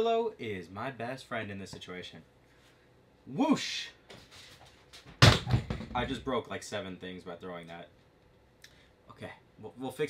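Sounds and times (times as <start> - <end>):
objects falling and clattering: 5.0 - 6.1.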